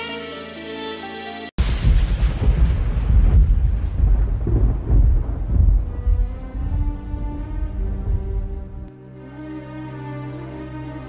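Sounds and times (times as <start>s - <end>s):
deep rumble: 1.6s - 8.9s.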